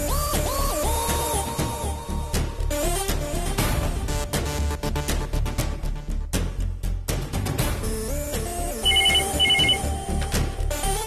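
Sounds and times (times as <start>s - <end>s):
telephone ringing: 8.8s - 9.9s.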